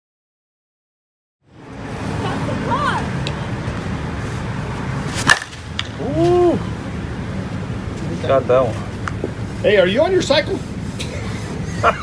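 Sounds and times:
low outdoor rumble: 1.4 - 12.0
bat cracking a softball: 5.1 - 6.4.

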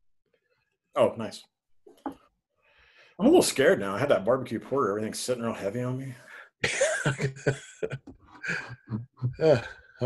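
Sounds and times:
man coughing: 6.6 - 8.8.

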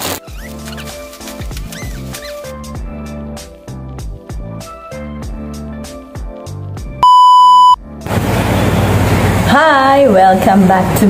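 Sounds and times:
background music with beat: 0.2 - 7.0
loud electronic beep: 7.0 - 7.8.

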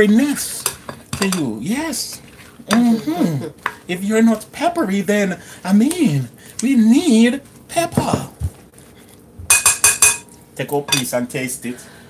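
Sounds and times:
spoon knocking glass bowl: 9.5 - 10.3.

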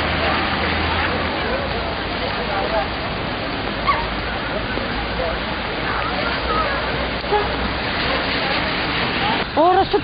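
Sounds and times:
heavy rain and running water: 0.0 - 10.0.

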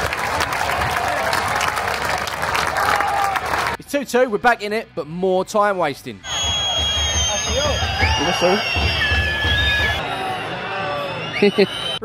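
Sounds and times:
crowd whistling: 6.2 - 12.0
crowd murmur: 7.3 - 12.0.

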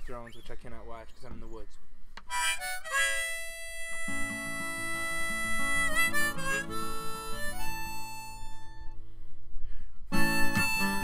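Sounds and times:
harmonica held notes: 2.3 - 9.0, 10.1 - 11.0
acoustic guitar chords: 2.4 - 9.0, 10.1 - 11.0.

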